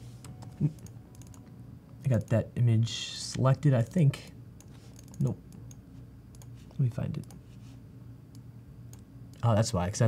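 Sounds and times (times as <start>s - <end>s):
laptop keyboard typing clicks: 0.2s - 1.5s.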